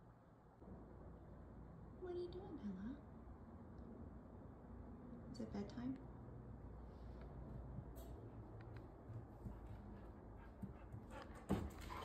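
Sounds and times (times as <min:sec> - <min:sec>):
dog footfalls on carpeted stairs: 0:08.9 - 0:12.0
dog panting softly: 0:09.4 - 0:12.0.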